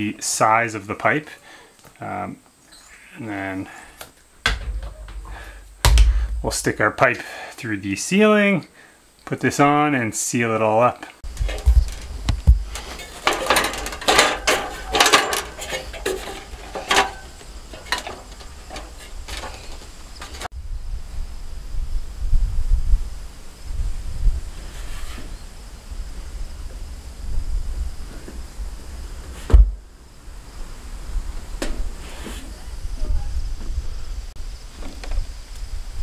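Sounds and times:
metal ladder clattering: 0:04.5 - 0:06.6, 0:11.2 - 0:20.5
sharp knock: 0:04.5 - 0:06.6
wind rumbling on microphone: 0:11.2 - 0:14.0, 0:15.9 - 0:36.0.

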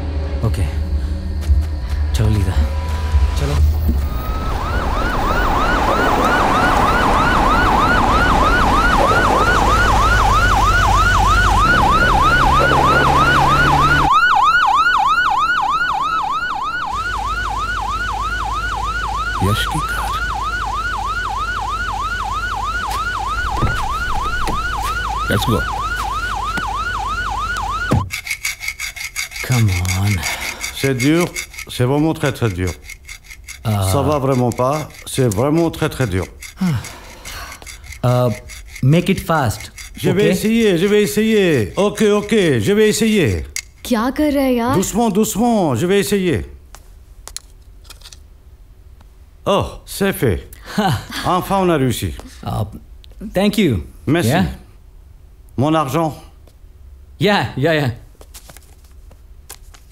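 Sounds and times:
police siren yelping: 0:03.7 - 0:28.1.

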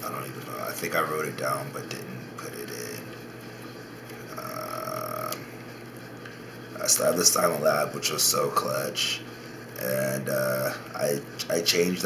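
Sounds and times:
room noise: 0:00.0 - 0:12.0
man humming: 0:04.2 - 0:05.6.

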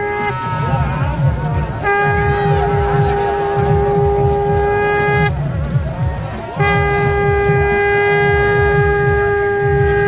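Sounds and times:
conch shell blown in long note: 0:00.0 - 0:05.4, 0:06.6 - 0:10.0
low rhythmic pounding: 0:00.0 - 0:10.0.

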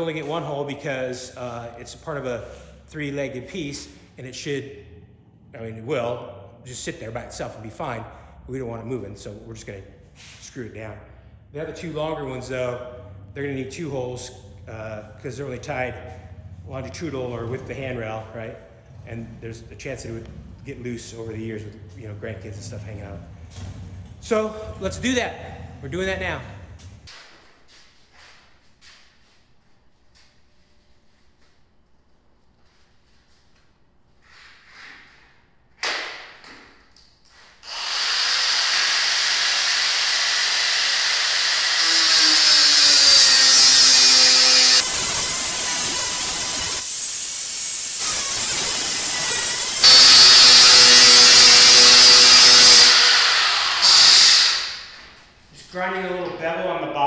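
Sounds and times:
electric drill boring steel: 0:37.6 - 0:54.9.

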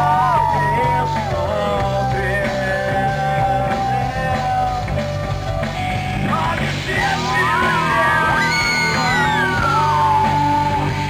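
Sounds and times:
live rock band playing: 0:00.0 - 0:11.0
person yelling: 0:07.0 - 0:10.8.

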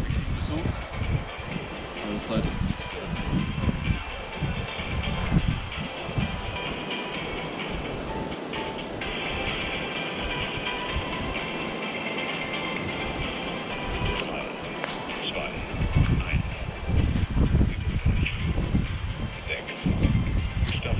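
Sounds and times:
background music: 0:00.0 - 0:20.9.

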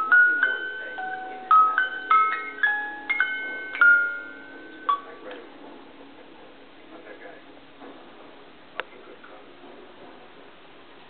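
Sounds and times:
toy chime note: 0:00.0 - 0:05.3.

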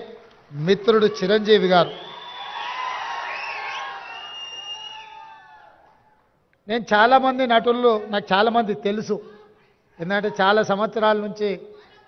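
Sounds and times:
large audience cheering: 0:00.0 - 0:06.2
high whistles: 0:01.8 - 0:05.6.

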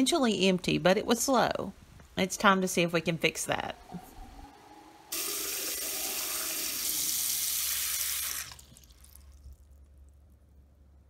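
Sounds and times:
faucet running into sink: 0:05.1 - 0:09.2.

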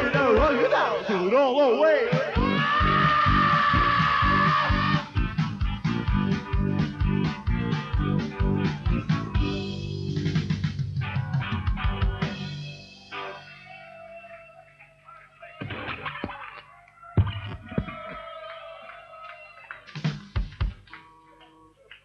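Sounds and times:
bass guitar: 0:00.0 - 0:00.7, 0:02.3 - 0:14.4
drums: 0:00.0 - 0:01.0, 0:02.0 - 0:13.6, 0:17.2 - 0:18.4, 0:19.4 - 0:21.0
electric guitar: 0:02.3 - 0:15.0.

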